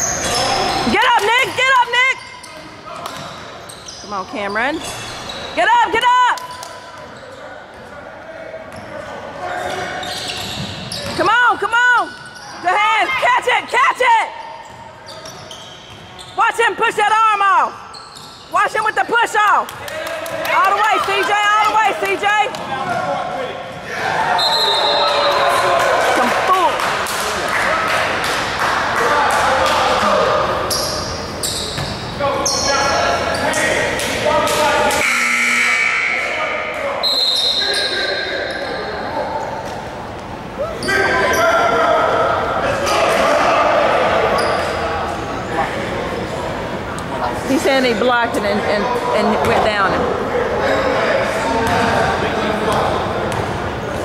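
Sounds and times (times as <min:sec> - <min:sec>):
crowd voices: 0:00.0 - 0:54.0
sneakers squeaking on hardwood: 0:02.2 - 0:05.6, 0:08.7 - 0:11.3, 0:12.1 - 0:12.7, 0:14.4 - 0:16.4, 0:17.9 - 0:19.1, 0:30.7 - 0:33.5.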